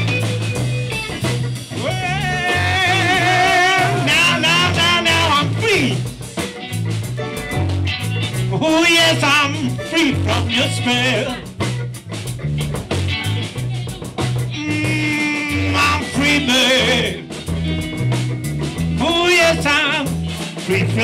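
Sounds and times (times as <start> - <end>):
bass guitar: 0.0 - 21.0
drum kit: 0.0 - 21.0
electric guitars: 0.0 - 21.0.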